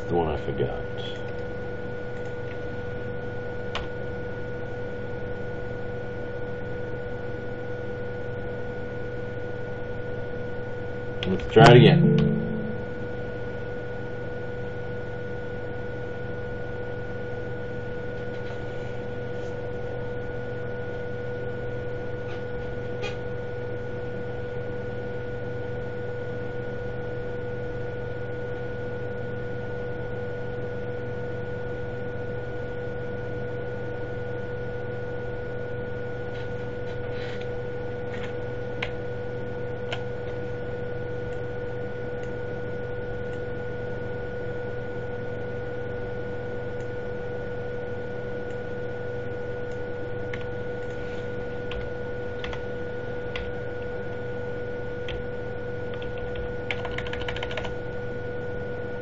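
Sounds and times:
electrical hum and hiss: 0.0 - 59.0.

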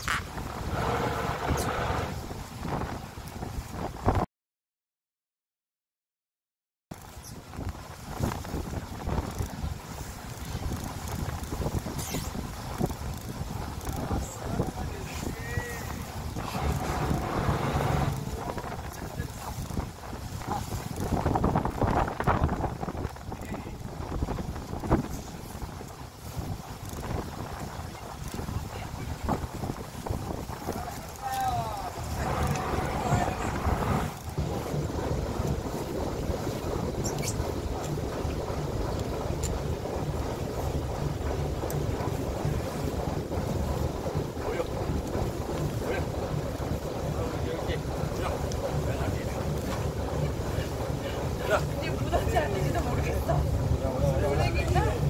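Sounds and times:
low rumble: 0.0 - 2.6, 12.5 - 23.0, 28.2 - 55.0
wind buffeting microphone: 0.0 - 4.3, 7.0 - 55.0.

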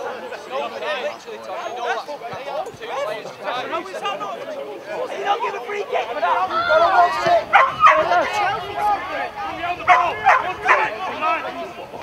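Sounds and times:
people shouting: 4.9 - 12.0
sharp loud calls: 7.4 - 8.9.

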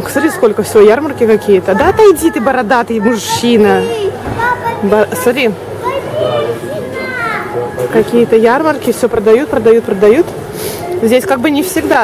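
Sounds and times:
crowd of shoppers talking: 0.0 - 12.0
child's voice: 1.6 - 7.6.

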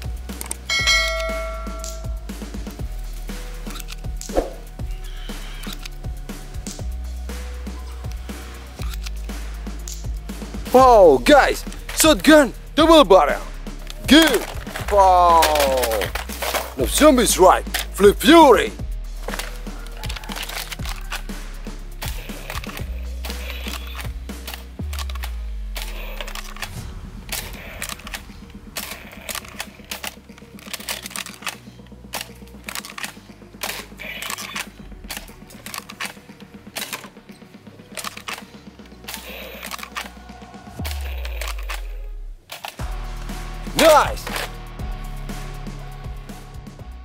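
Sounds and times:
background music with deep bass: 0.0 - 47.0
darts hitting plastic targets: 4.2 - 4.6.

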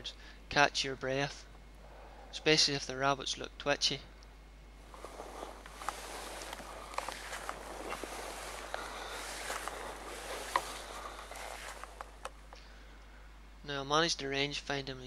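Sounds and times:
rustling through grass: 4.8 - 12.6.

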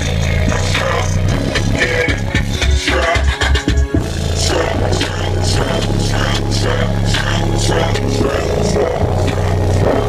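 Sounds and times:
deep bass notes: 0.0 - 10.0.

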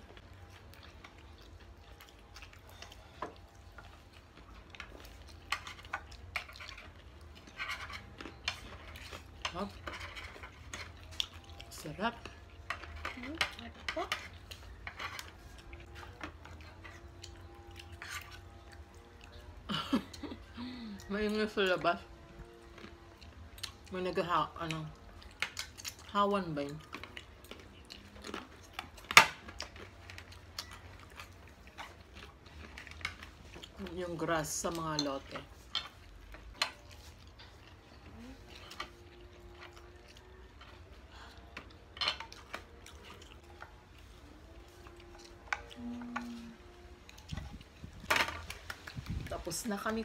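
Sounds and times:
faint steady hum: 0.0 - 50.0
people chewing: 0.0 - 50.0.

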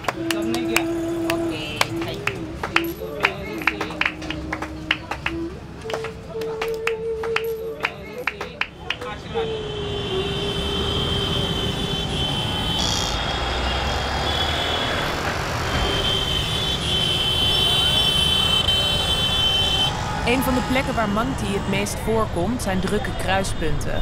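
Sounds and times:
crowd voices: 0.0 - 24.0
street traffic: 0.0 - 24.0.

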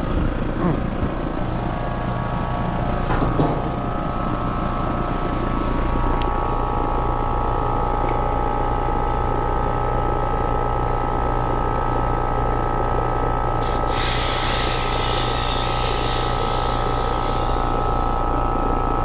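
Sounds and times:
condensing unit humming: 0.0 - 19.0
refrigerant hissing loudly: 13.6 - 18.3.

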